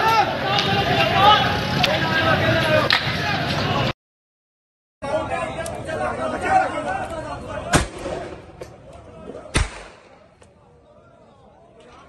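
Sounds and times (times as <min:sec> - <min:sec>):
voices chattering: 0:00.0 - 0:03.9, 0:05.0 - 0:12.0.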